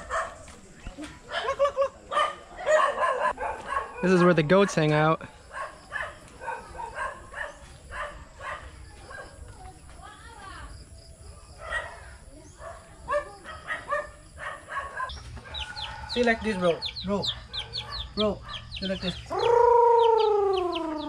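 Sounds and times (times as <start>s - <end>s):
chickens clucking: 15.0s - 21.0s.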